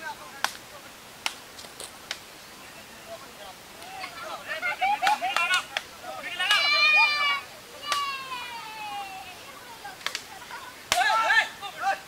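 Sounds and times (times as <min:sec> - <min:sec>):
low outdoor noise: 0:00.0 - 0:12.0
sharp smacks: 0:07.8 - 0:08.1, 0:10.0 - 0:10.3.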